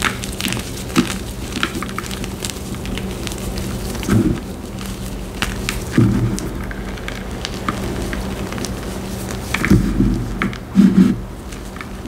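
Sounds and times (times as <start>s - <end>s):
chalk being crushed crunching: 0.0s - 12.0s.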